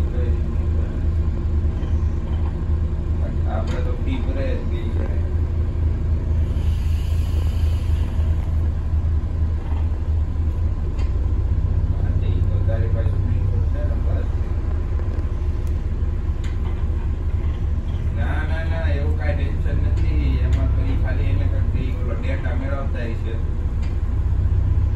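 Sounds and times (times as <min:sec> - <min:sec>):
bus engine and road noise: 0:00.0 - 0:24.9.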